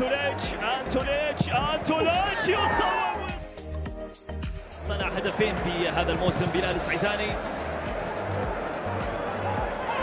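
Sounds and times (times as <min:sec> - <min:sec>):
commentator shouting excitedly: 0:00.0 - 0:03.4
background music: 0:00.0 - 0:10.0.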